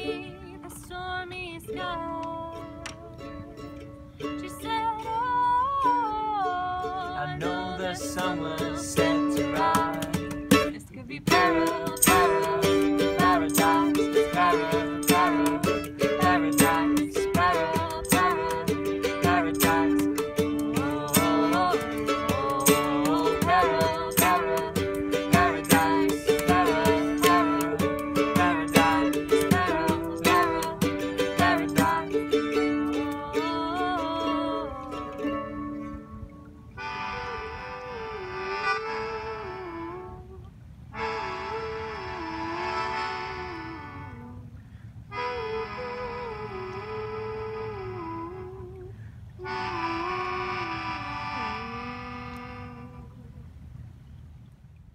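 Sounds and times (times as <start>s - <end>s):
mandolin strumming: 0.0s - 37.0s
melodica melody: 7.4s - 34.6s, 36.7s - 40.3s, 40.9s - 44.4s, 45.1s - 48.7s, 49.4s - 53.2s
cajon beat: 8.2s - 33.3s.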